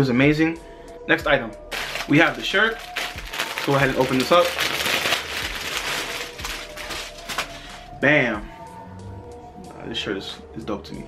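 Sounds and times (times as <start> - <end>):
plastic bag crinkling: 1.7 - 7.9.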